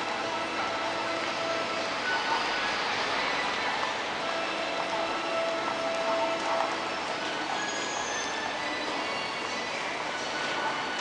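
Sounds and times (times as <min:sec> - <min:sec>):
continuous hiss: 0:00.0 - 0:11.0.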